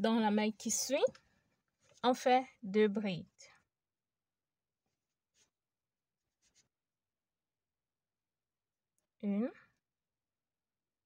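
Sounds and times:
faint thread rustles: 0.9 - 2.3, 4.8 - 6.8.

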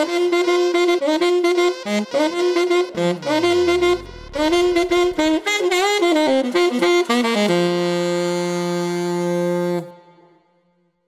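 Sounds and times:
saxophone playing: 0.0 - 10.0.

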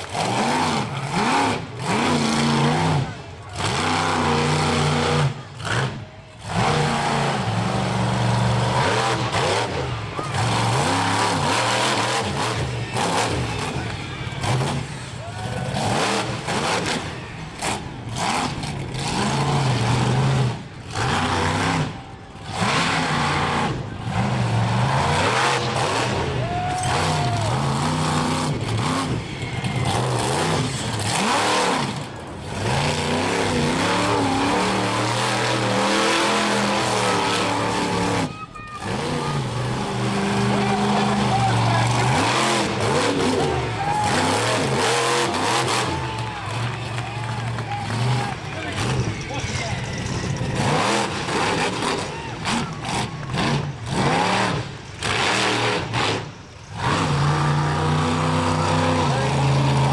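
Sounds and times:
monster truck engine revving: 0.0 - 59.9.

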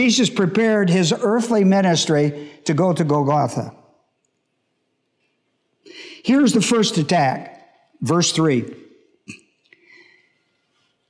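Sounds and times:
faint breath: 5.8 - 6.3, 9.8 - 10.6
man's sharp intake of breath: 5.9 - 6.3.

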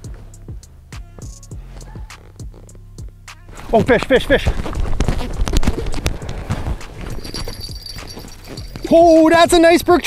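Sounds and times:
footsteps crunching on snow and ice: 3.5 - 9.6
scraping and shuffling: 3.5 - 9.6
faint high ringing: 7.1 - 9.5.

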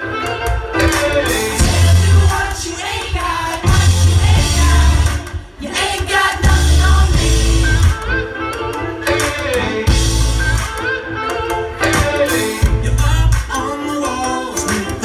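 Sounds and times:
drums: 0.0 - 15.0
deep bass notes: 1.5 - 2.5, 3.6 - 5.2, 6.4 - 8.2, 9.9 - 10.7, 12.0 - 13.5
electric guitar: 6.4 - 15.0.

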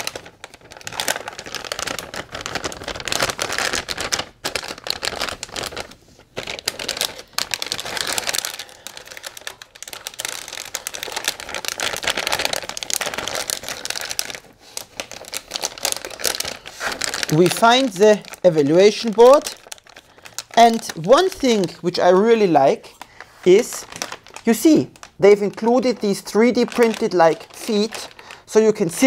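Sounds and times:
plastic bag crinkling: 0.0 - 29.0.

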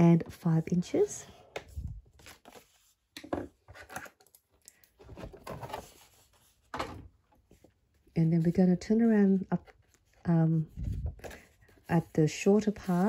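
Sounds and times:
paper handling: 1.6 - 3.1, 9.2 - 13.0.

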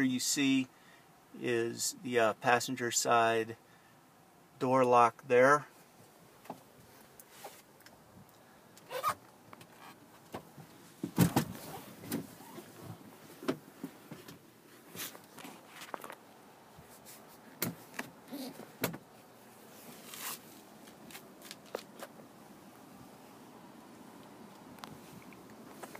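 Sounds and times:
thump: 11.0 - 11.6
phone handling clicks and rustles: 15.1 - 16.2.

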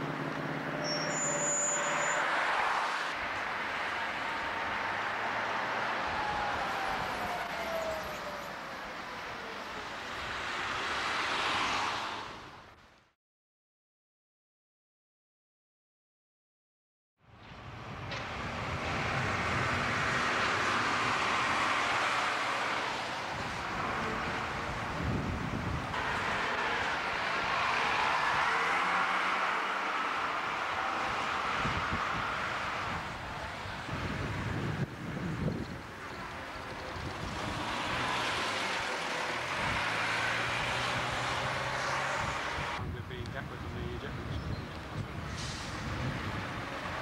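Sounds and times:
bus diesel engines pulling away: 0.0 - 12.7, 17.4 - 47.0
wind noise on microphone: 17.4 - 21.3, 23.2 - 26.4, 31.0 - 38.0, 39.5 - 47.0.

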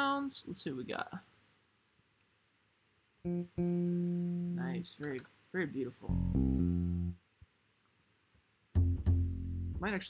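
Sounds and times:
plucked electric bass notes: 3.3 - 4.8, 6.1 - 7.2, 8.8 - 10.0.

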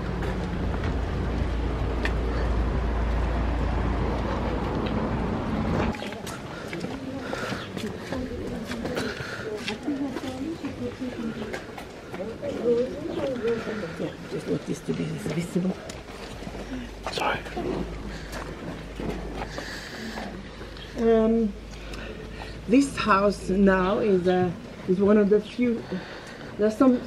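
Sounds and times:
steady low rumble: 0.0 - 7.4
background voices talking: 0.0 - 27.0.

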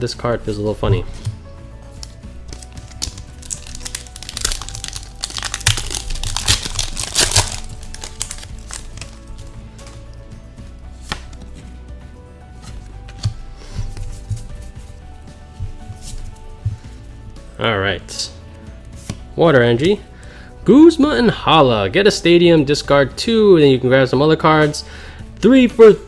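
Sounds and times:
quiet background music: 0.0 - 26.0
cards rustling: 0.9 - 10.2, 10.9 - 11.9, 12.5 - 17.1
foil wrapper crinkling and tearing: 2.5 - 9.4.

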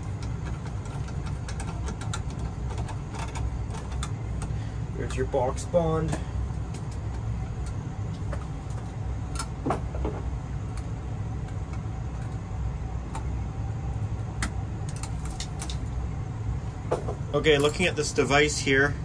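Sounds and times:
cable clicks and rustles: 0.0 - 5.2
machinery rumble: 0.0 - 19.0.

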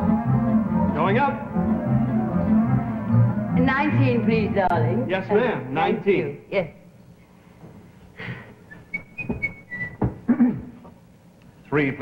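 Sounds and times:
person whistling: 8.7 - 10.0.

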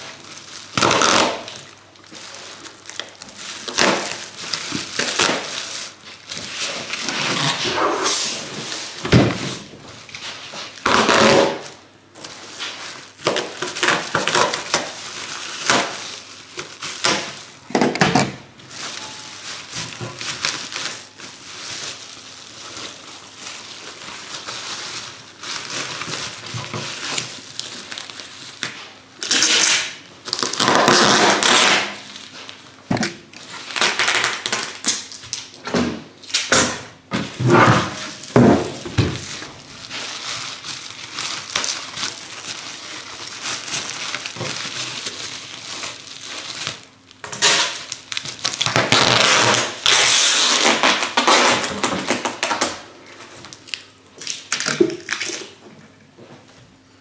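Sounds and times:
bubble wrap rustling and crinkling: 0.0 - 55.6.

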